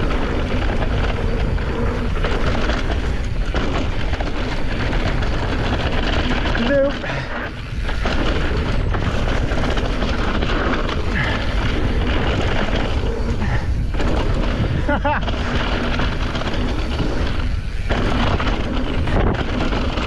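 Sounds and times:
bike tyres rolling on dirt: 0:00.0 - 0:20.0
wind buffeting microphone: 0:00.0 - 0:20.0.

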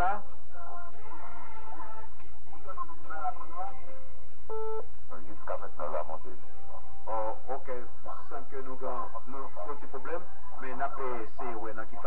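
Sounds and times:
faint voices over telephone: 0:00.0 - 0:12.0
music over telephone: 0:00.0 - 0:12.0
steady low hum: 0:00.0 - 0:12.0.

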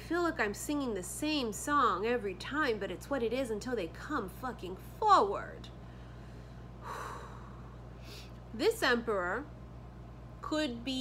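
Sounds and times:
low steady hum: 0:00.0 - 0:11.0
woman breathing: 0:05.8 - 0:08.4.

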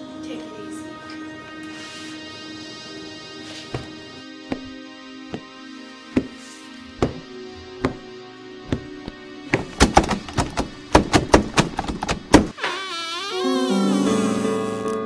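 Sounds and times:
slow regular thuds: 0:04.5 - 0:05.5, 0:06.1 - 0:06.4, 0:07.0 - 0:12.5.

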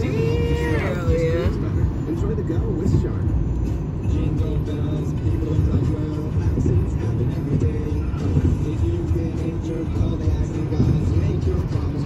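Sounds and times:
music from car radio: 0:00.0 - 0:12.0
road and engine rumble: 0:00.0 - 0:12.0.

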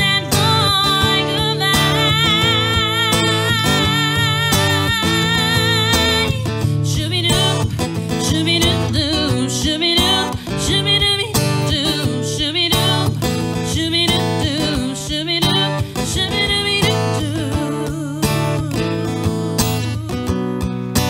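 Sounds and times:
woman singing: 0:00.0 - 0:20.7
acoustic guitar strumming: 0:00.0 - 0:21.0.

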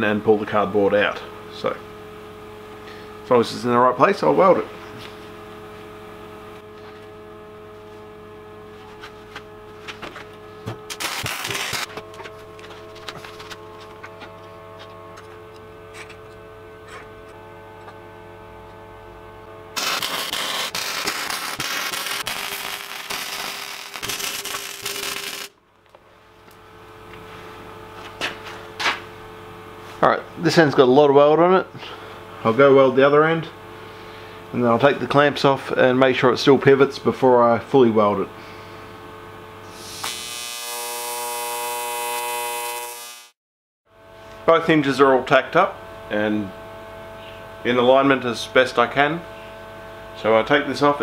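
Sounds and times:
welding machine electrical hum: 0:00.0 - 0:51.0
arc welding crackle: 0:10.9 - 0:13.5, 0:19.8 - 0:25.6, 0:39.8 - 0:43.4.

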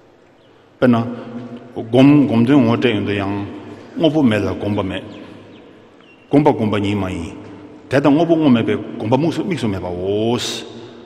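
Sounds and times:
man speaking: 0:00.8 - 0:05.4, 0:06.3 - 0:10.8.

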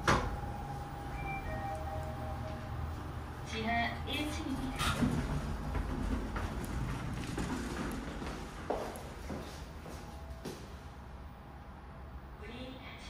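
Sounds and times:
footsteps on hard floor: 0:05.1 - 0:10.7.

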